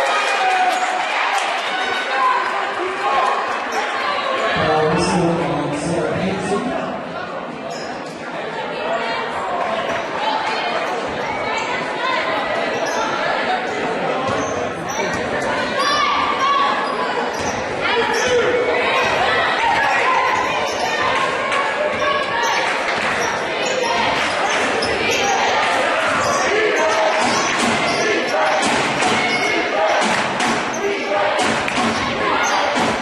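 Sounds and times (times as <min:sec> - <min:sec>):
crowd and player voices: 0:00.0 - 0:33.0.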